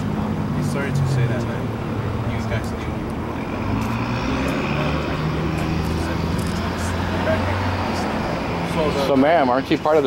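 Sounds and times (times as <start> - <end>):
people talking quietly: 0.0 - 10.0
vehicle engine drone: 0.0 - 10.0.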